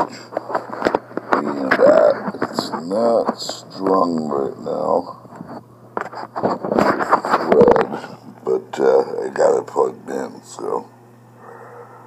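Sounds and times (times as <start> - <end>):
man talking: 1.4 - 5.2, 7.5 - 10.9.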